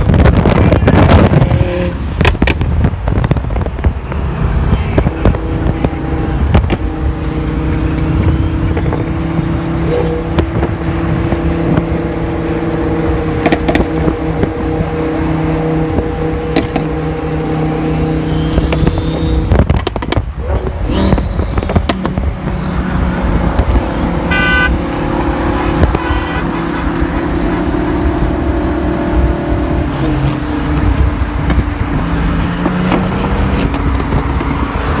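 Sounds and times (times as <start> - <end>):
car engine drone: 0.0 - 35.0
road and wind noise: 0.0 - 35.0
sharp exhaust pops: 13.4 - 14.1, 18.5 - 22.4
car horn beeps: 24.3 - 27.7.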